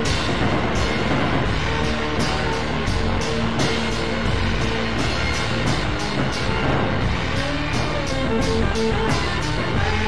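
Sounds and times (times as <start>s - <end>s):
drums steady beat: 0.0s - 10.0s
held electric guitar notes: 0.0s - 10.0s.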